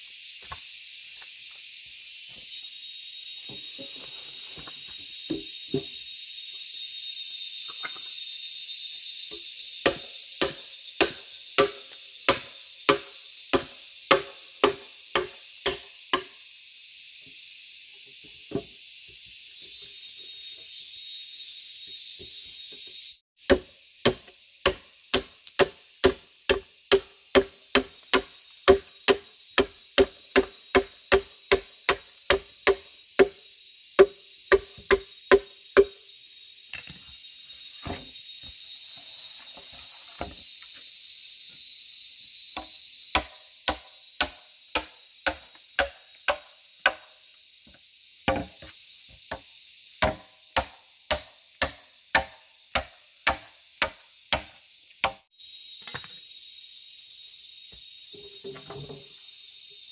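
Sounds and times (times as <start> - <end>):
machete chopping hollow bamboo: 9.8 - 16.4, 23.4 - 33.4, 34.0 - 36.0, 42.6 - 47.1, 50.0 - 56.1.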